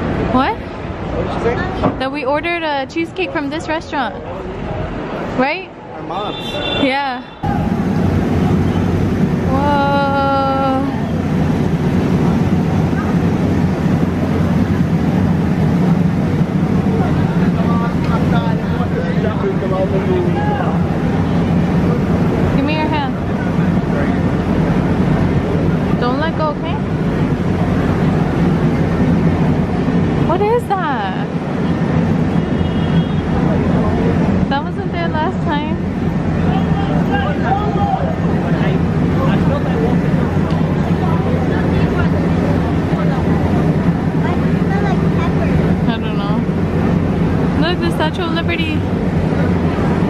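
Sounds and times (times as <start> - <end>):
crowd chatter: 0.0 - 50.0
traffic rumble: 0.0 - 50.0.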